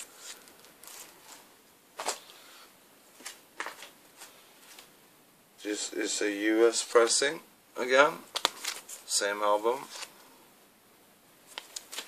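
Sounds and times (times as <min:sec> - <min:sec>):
record sleeves rustling: 0:00.0 - 0:02.4, 0:03.0 - 0:05.0, 0:08.2 - 0:10.4, 0:11.4 - 0:12.0.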